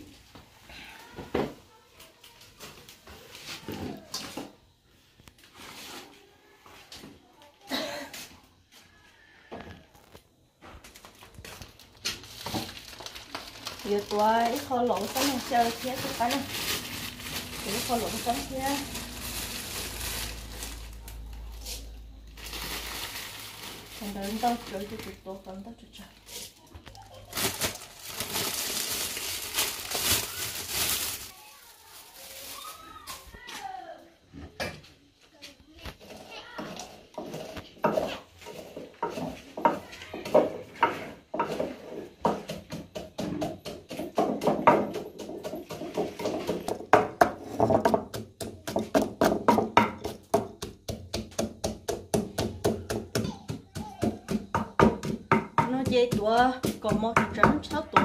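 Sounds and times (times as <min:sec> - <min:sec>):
peanuts rattling into mortar: 0:11.3 - 0:21.0
wooden pestle pounding: 0:36.6 - 0:58.0.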